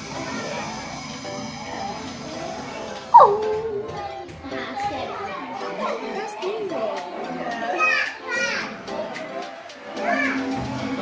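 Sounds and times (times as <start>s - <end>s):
children chattering and calling out: 0.0s - 11.0s
background music: 1.2s - 11.0s.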